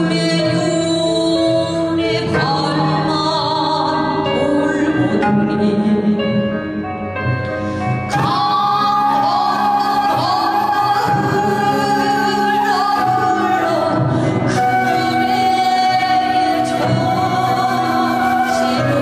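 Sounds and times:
woman singing with vibrato: 0:00.0 - 0:06.6, 0:08.1 - 0:19.0.

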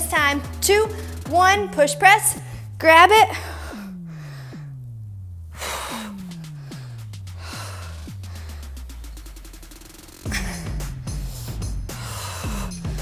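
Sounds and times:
workout music with steady beat: 0:00.0 - 0:13.0
sharp breath exhaled: 0:11.9 - 0:13.0.

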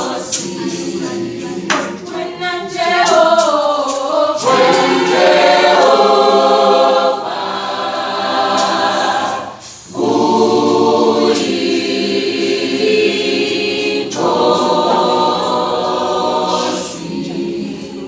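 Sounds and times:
choir singing a cappella: 0:00.0 - 0:18.0.

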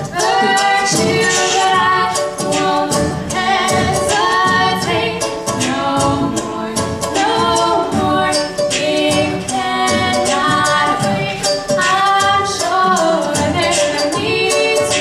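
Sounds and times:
women singing together: 0:00.0 - 0:15.0.

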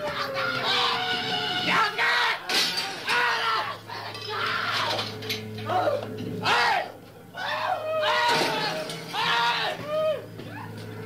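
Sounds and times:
people shouting and yelling: 0:00.0 - 0:11.0.

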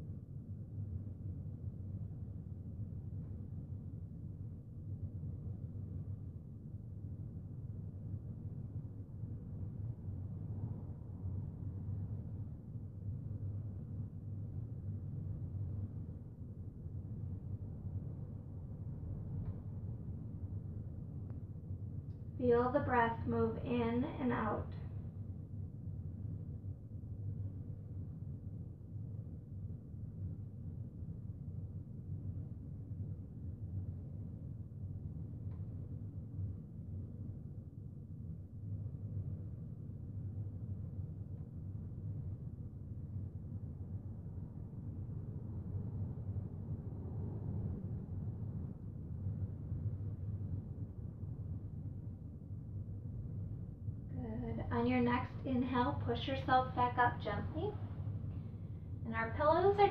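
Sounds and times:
low room hum: 0:00.0 - 0:59.9.

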